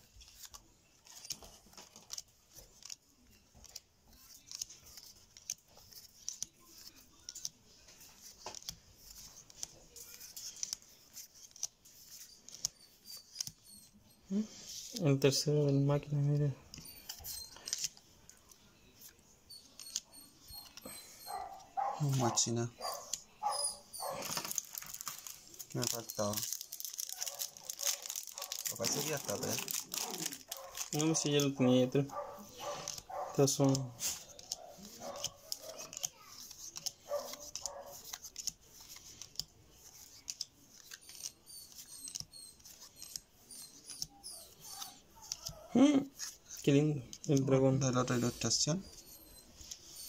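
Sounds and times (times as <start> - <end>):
trading cards being shuffled: 0.0 - 50.0.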